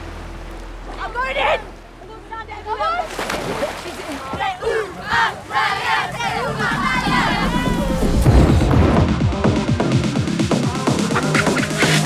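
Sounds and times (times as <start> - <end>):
splashing in water: 2.9 - 5.5.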